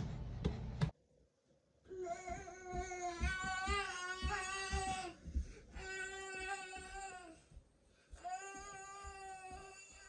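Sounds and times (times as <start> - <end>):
toddler whiny cry: 1.9 - 5.2, 8.2 - 10.0.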